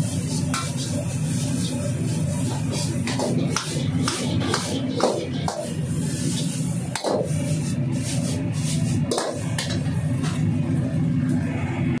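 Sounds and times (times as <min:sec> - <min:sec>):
gas burner roaring: 0:00.0 - 0:12.0.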